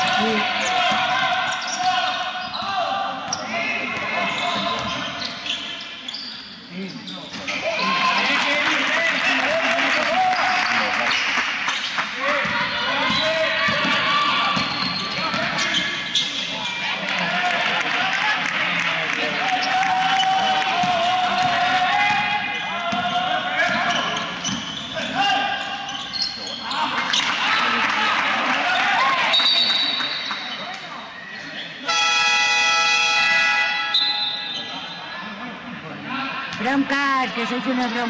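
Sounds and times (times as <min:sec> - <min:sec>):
players shouting: 0:12.2 - 0:15.8
basketball bouncing on court: 0:12.3 - 0:15.6
electronic game horn blast: 0:31.9 - 0:33.9.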